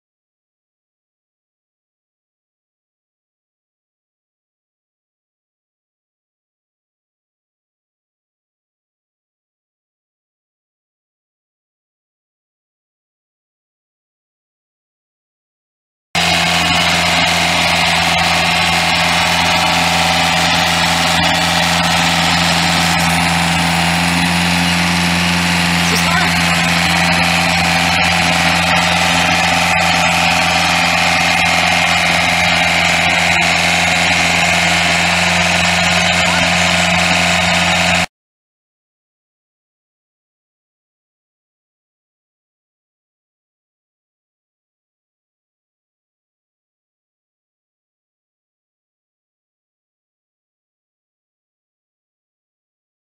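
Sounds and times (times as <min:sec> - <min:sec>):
diesel engine running: 0:16.2 - 0:38.1.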